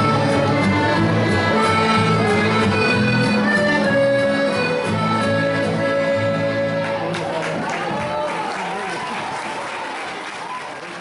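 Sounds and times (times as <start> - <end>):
audience applauding: 6.8 - 11.0.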